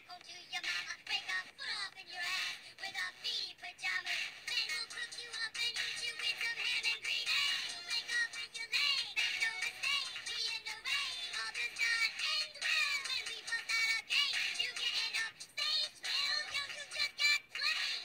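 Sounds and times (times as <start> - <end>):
high-pitched voices rapping over a beat: 0.0 - 18.0.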